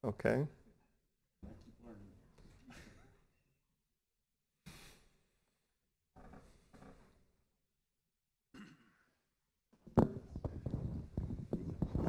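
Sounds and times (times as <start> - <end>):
knocks and rustles from microphone: 9.8 - 12.0.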